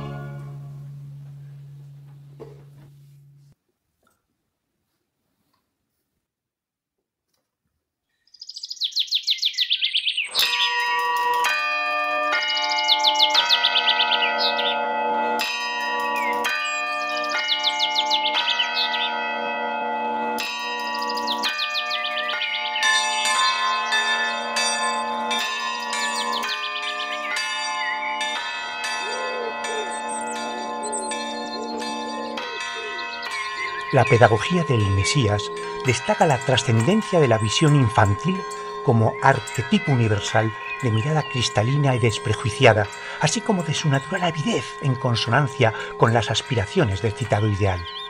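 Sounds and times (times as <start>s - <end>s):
ringing bell-like chords: 0.0s - 3.6s, 10.3s - 48.0s
birds chirping in trills: 8.1s - 48.0s.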